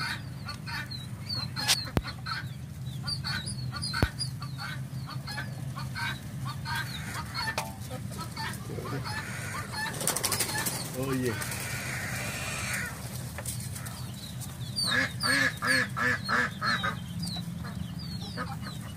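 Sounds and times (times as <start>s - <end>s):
steady low hum: 0.0s - 18.9s
young birds peeping and chirping: 0.0s - 18.9s
sharp knocks: 7.5s - 7.8s.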